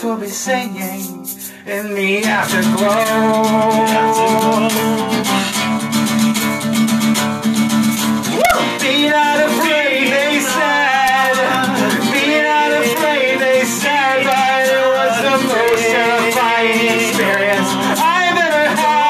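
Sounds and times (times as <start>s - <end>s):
guitar gliding melody: 2.2s - 19.0s.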